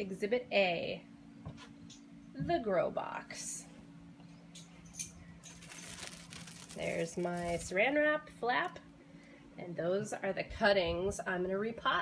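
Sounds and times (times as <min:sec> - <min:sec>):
steady low hum: 0:00.0 - 0:12.0
cling film crinkling: 0:05.5 - 0:08.0.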